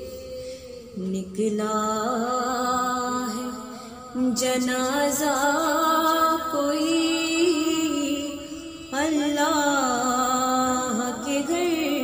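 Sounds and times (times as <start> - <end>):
woman chanting a lament: 0.0 - 12.0.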